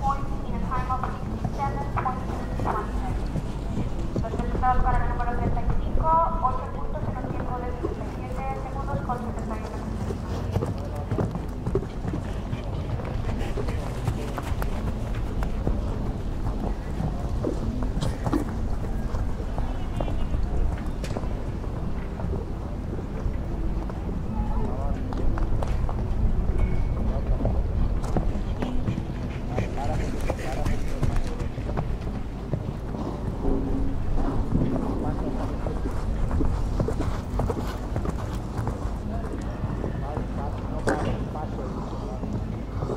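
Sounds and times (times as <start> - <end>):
horse hoofbeats on sand: 0.0 - 42.9
wind buffeting microphone: 0.0 - 42.9
steady low rumble: 31.0 - 39.3.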